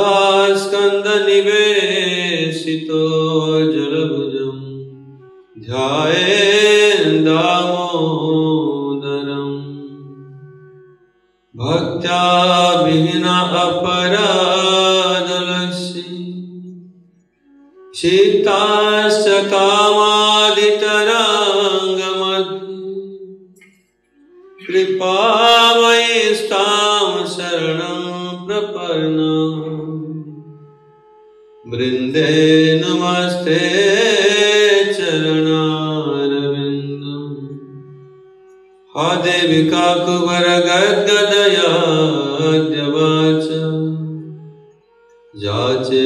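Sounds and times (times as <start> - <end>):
man chanting a prayer: 0.0 - 4.9, 5.6 - 10.3, 11.6 - 16.5, 17.9 - 23.2, 24.6 - 30.4, 31.7 - 37.8, 38.9 - 44.2, 45.4 - 46.0.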